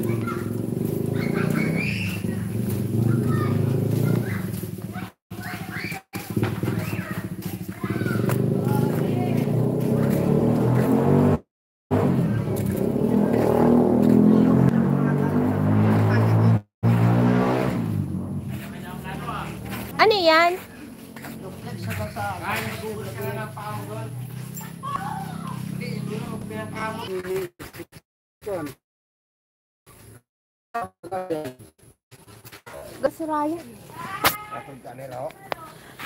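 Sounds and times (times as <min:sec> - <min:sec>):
voices talking: 0:00.0 - 0:10.6, 0:18.6 - 0:27.6, 0:32.8 - 0:36.0
motorcycle engine running: 0:00.0 - 0:16.6, 0:17.6 - 0:27.5.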